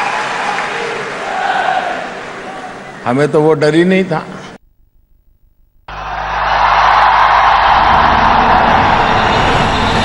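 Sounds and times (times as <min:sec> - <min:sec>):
large audience applauding: 0:00.0 - 0:01.4, 0:05.9 - 0:09.8.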